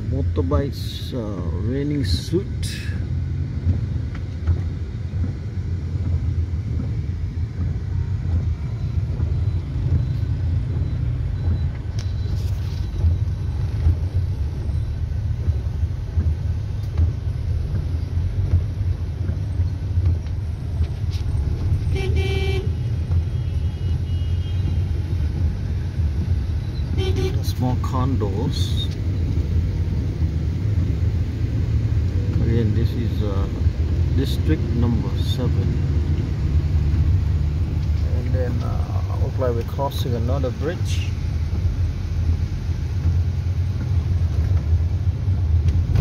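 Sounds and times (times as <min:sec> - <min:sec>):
car engine and road rumble: 0:00.0 - 0:46.0
vehicle horn toot: 0:21.9 - 0:24.7, 0:27.0 - 0:27.4.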